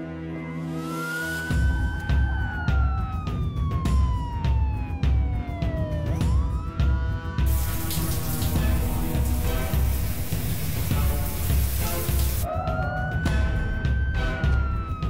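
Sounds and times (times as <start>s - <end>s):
siren wailing: 1.5s - 6.4s, 7.5s - 13.2s, 13.9s - 15.0s
falling water rushing: 7.5s - 12.5s.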